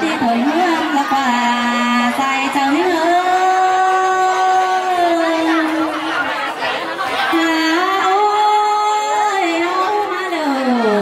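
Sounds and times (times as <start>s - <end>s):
murmur of crowd chatter: 0.0s - 11.0s.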